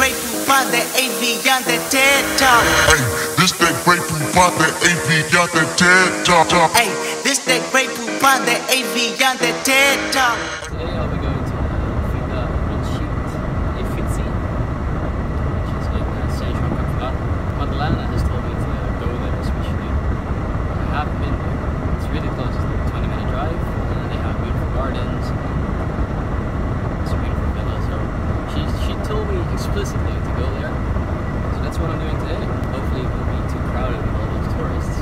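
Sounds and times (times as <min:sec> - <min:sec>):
heavy rumbling noise: 0:01.8 - 0:06.8, 0:09.4 - 0:35.0
man talking: 0:02.4 - 0:06.8, 0:10.7 - 0:14.4, 0:15.5 - 0:20.0, 0:20.7 - 0:25.4, 0:27.0 - 0:30.8, 0:31.5 - 0:35.0.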